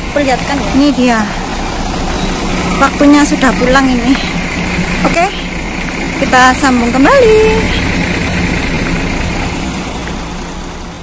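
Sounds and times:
bus engines idling: 0.0s - 11.0s.

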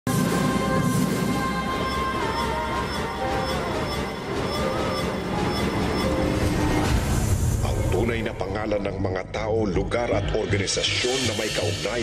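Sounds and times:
dramatic theme music: 0.1s - 12.0s.

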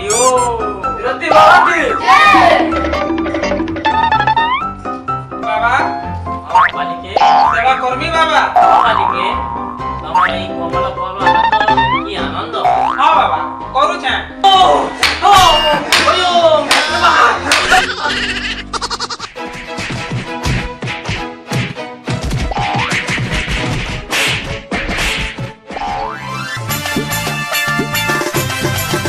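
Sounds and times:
background music: 0.0s - 29.0s
cartoon boing: 2.3s - 4.7s, 6.5s - 7.6s, 8.6s - 10.4s, 11.2s - 12.1s, 12.7s - 13.1s, 25.8s - 26.4s.

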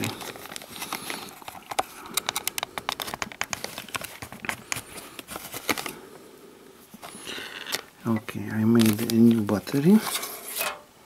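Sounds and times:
batteries clicking and tapping: 0.0s - 6.0s
plastic bag rustling: 0.0s - 6.1s, 6.9s - 10.7s.

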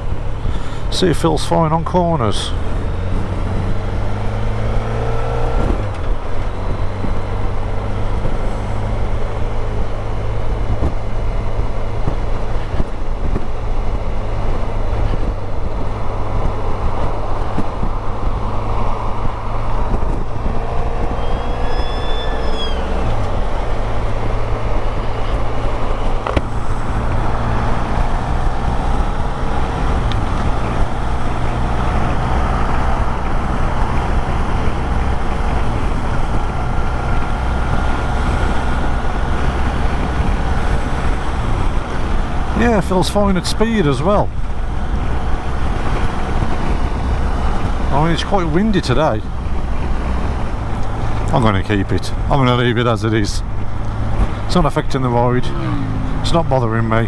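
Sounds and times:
wind and road rush: 0.0s - 57.0s
motorcycle engine running: 53.4s - 57.0s.

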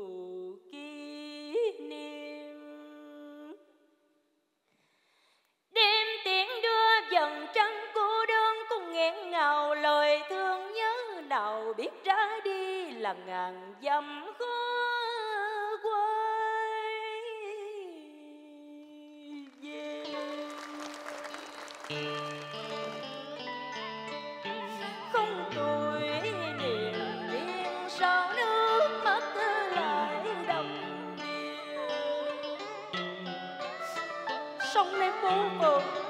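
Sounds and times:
person singing a long note: 19.2s - 23.3s, 24.5s - 36.0s.

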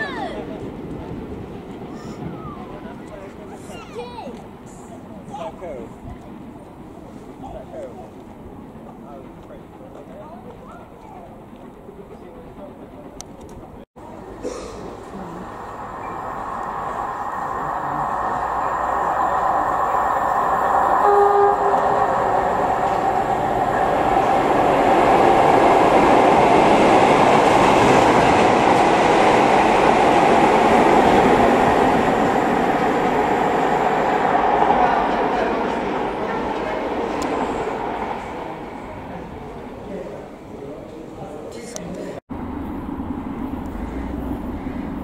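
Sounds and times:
diesel locomotive passing: 0.0s - 41.4s, 42.3s - 45.0s
train horn note: 20.9s - 23.0s.

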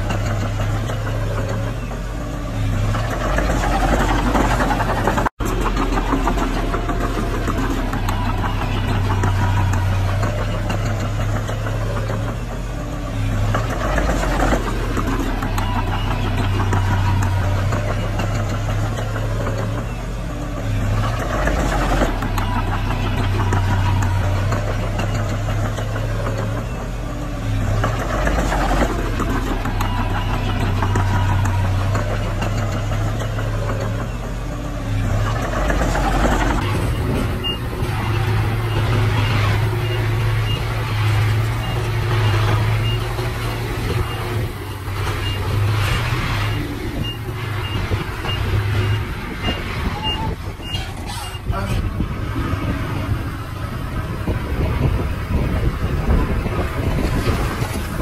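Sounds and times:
bulldozer diesel engine: 0.0s - 58.0s
dump truck engine: 0.0s - 58.0s.

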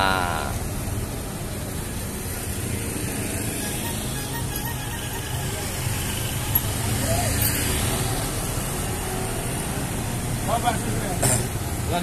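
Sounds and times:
motorbikes passing: 0.0s - 12.0s
car passing: 0.6s - 12.0s.

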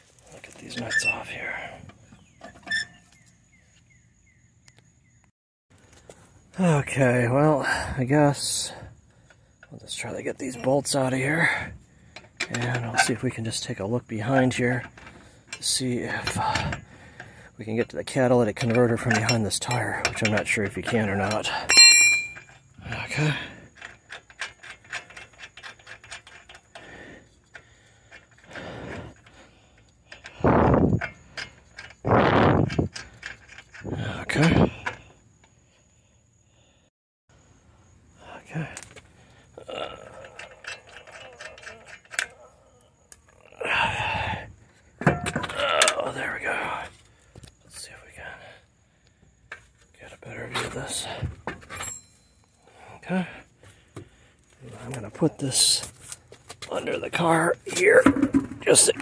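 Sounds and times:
lug nuts clicking and clinking: 12.1s - 32.0s, 32.7s - 35.1s, 40.0s - 43.4s, 45.0s - 46.0s
wheel knocks and thuds: 45.0s - 45.6s, 58.0s - 59.0s.

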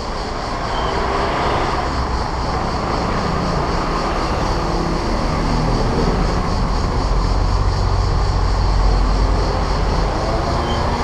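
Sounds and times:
car engine: 0.0s - 11.0s
road noise: 0.0s - 11.0s.

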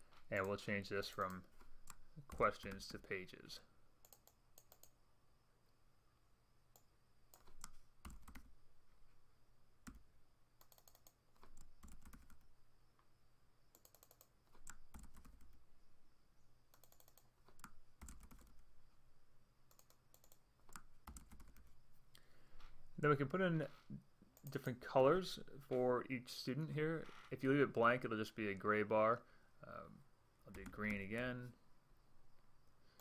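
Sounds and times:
faint keyboard typing: 0.0s - 3.2s, 4.0s - 5.0s, 6.7s - 8.6s, 9.8s - 13.1s, 13.7s - 15.7s, 16.6s - 18.8s, 19.6s - 23.3s, 24.2s - 24.8s, 30.4s - 31.4s.

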